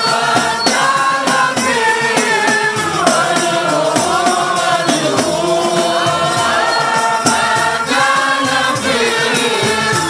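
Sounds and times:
men singing devotional song: 0.0 - 10.0.

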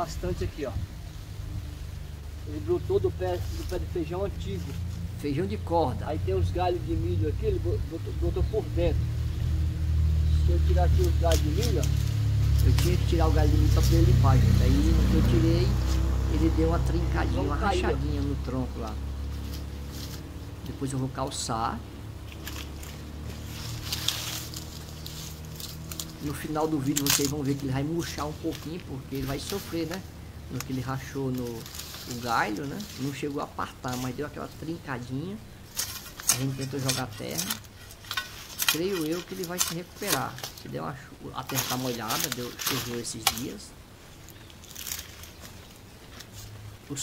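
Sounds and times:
low steady hum: 0.0 - 47.0
weeds and stalks rustling: 0.0 - 47.0
stems snapping: 10.4 - 47.0.

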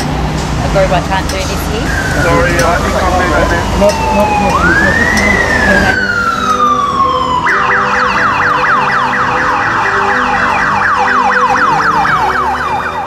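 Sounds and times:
siren wail and yelp: 1.4 - 13.0.

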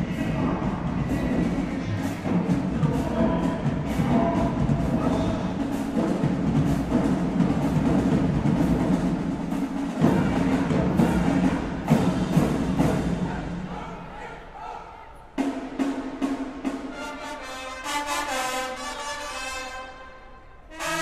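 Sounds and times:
heavy drum strokes: 0.0 - 14.2
held brass notes: 0.0 - 15.6, 16.6 - 21.0
marching band playing: 0.0 - 21.0.

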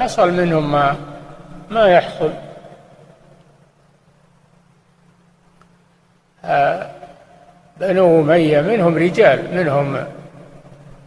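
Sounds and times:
faint low hum with hiss: 0.0 - 11.0.

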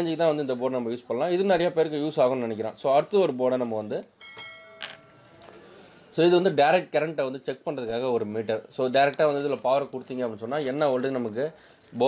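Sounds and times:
bell chime: 4.2 - 5.3.

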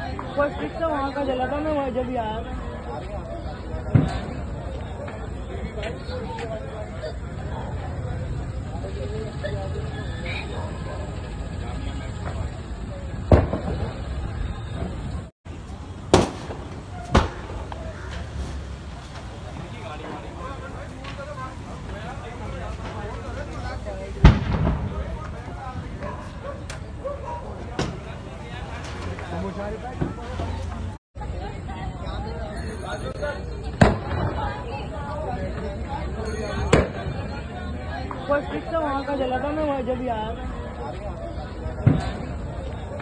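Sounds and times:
fire rumbling: 0.0 - 32.8, 33.4 - 43.0
people talking: 0.0 - 43.0
loud sharp bangs: 3.8 - 5.3, 12.0 - 15.2, 16.0 - 21.2, 22.6 - 26.1, 33.7 - 34.7, 41.8 - 42.4
loud bang with echo: 24.2 - 25.2.

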